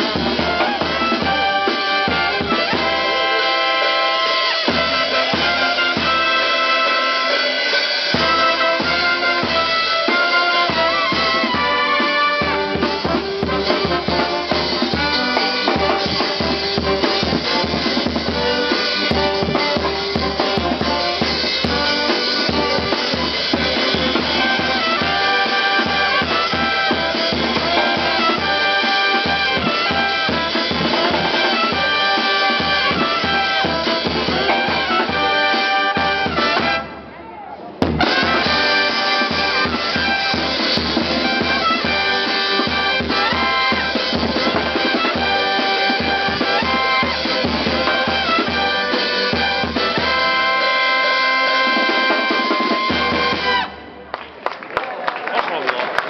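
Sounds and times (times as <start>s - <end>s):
steady drumbeat: 0.0s - 37.0s, 37.7s - 53.8s
brass band playing: 0.0s - 54.2s.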